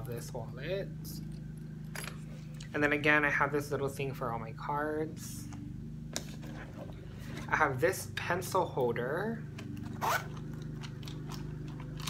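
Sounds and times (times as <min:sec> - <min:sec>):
lawn mower drone: 0:00.2 - 0:12.0
zipper being pulled open: 0:09.9 - 0:10.6.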